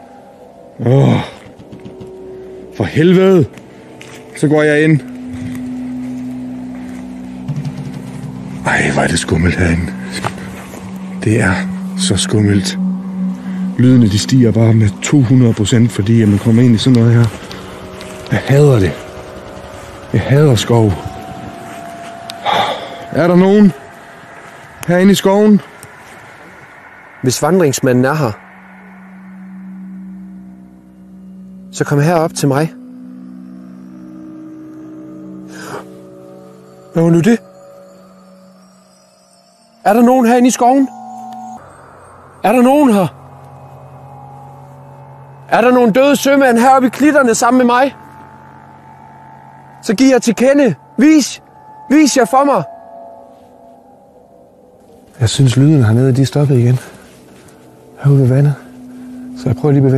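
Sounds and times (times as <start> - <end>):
eerie ambient drone music: 0.0 - 59.9
low humming tones: 0.0 - 59.9.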